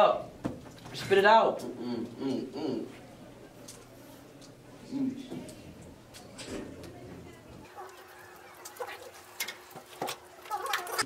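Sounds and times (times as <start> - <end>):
muffled voices: 0.9 - 9.2.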